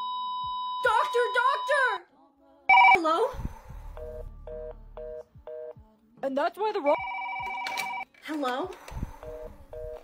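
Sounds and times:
telephone fast busy tone: 0:07.0 - 0:08.0.

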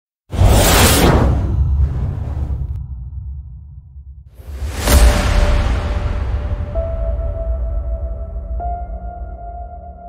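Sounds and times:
deep rumble: 0:00.8 - 0:10.0.

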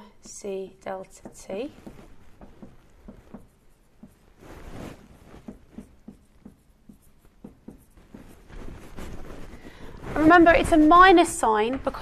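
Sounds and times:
marker pen writing on whiteboard: 0:00.2 - 0:09.8.

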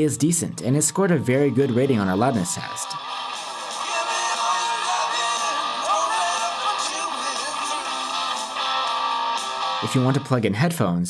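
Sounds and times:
rock music through phone speaker: 0:00.0 - 0:10.2.

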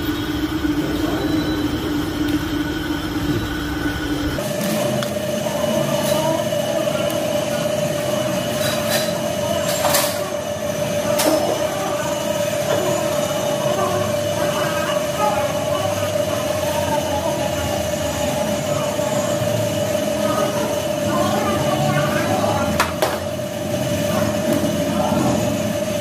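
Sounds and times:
machine high whine: 0:00.0 - 0:26.0
workshop background noise: 0:00.0 - 0:26.0.

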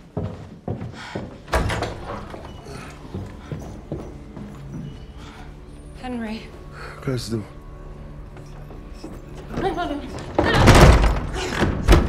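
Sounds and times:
hurried footsteps on hard floor: 0:00.0 - 0:05.6.

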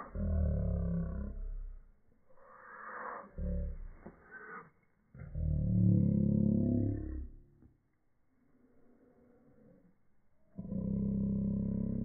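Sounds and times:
boy making deep vocal sound: 0:02.9 - 0:04.1.

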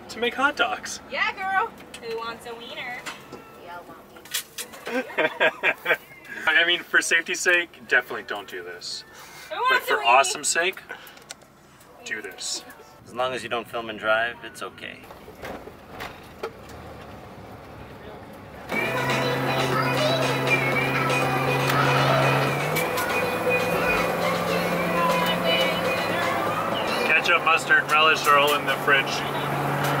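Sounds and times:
road and engine noise: 0:00.0 - 0:30.0
person laughing: 0:04.9 - 0:06.5.

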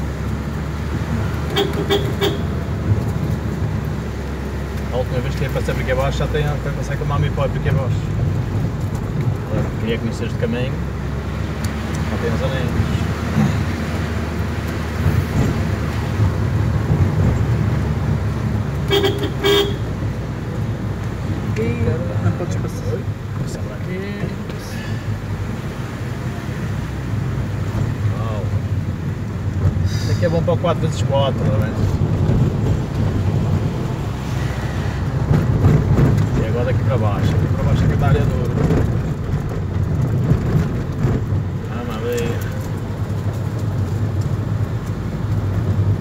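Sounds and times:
car engine and road rumble: 0:00.0 - 0:46.0
car horn toots: 0:01.5 - 0:02.6, 0:18.8 - 0:20.0
knocks from bumpy surface: 0:35.2 - 0:41.6.

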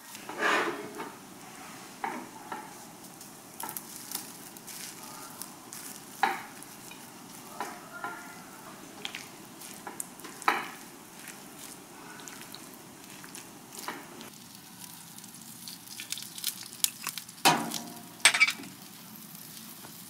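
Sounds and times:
sauce sizzling in a skillet: 0:01.1 - 0:20.0
spatula knocking and scraping pan: 0:06.1 - 0:07.0, 0:09.0 - 0:11.4.

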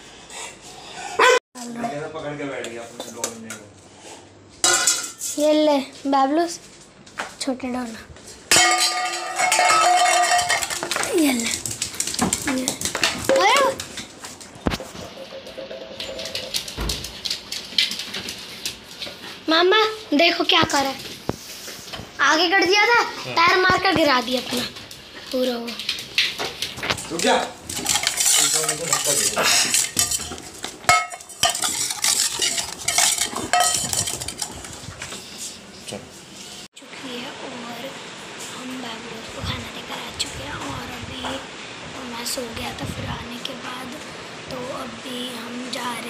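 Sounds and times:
dog whining: 0:01.0 - 0:01.4
metal dog bowl knocking on tile: 0:14.8 - 0:17.0
person talking: 0:36.8 - 0:46.0.

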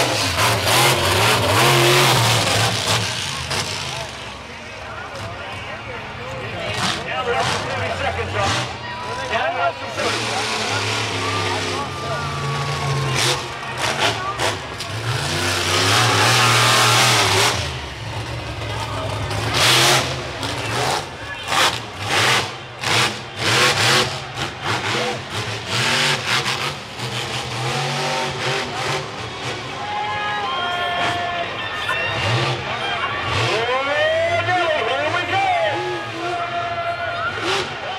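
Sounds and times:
monster truck engine revving: 0:00.0 - 0:29.9, 0:30.9 - 0:37.9
crowd voices and yelling: 0:00.0 - 0:37.9.

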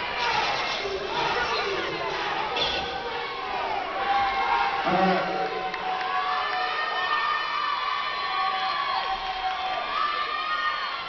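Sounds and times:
audience cheering and shouting: 0:00.0 - 0:11.0.

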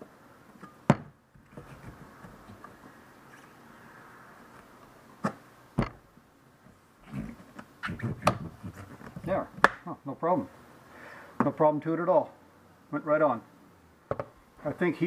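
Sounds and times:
rubber rubbing on metal wheel: 0:07.0 - 0:09.4.

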